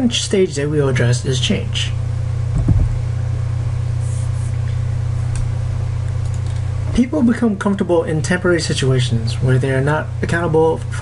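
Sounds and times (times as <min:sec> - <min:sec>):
low hum: 0:00.0 - 0:10.2
low-pitched bump: 0:02.5 - 0:03.0.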